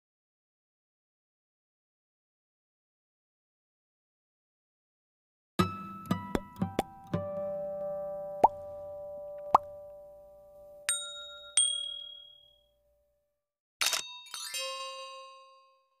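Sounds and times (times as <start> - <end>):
bright dings: 10.8 - 12.8
tinkling chimes cascade: 10.9 - 12.6, 14.0 - 16.0.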